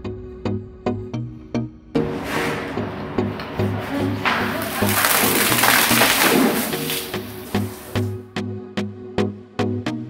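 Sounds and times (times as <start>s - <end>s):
soda bottles fizzing spray: 3.7s - 8.1s.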